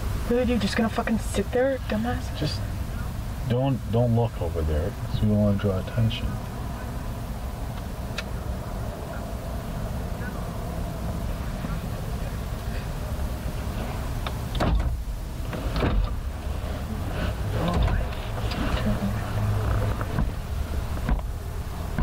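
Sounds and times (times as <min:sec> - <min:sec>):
low rumble inside car: 0:00.0 - 0:22.0.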